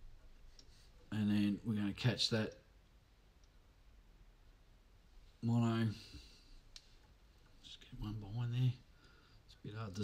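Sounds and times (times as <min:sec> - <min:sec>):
faint click: 0:02.5 - 0:03.6, 0:06.7 - 0:07.6.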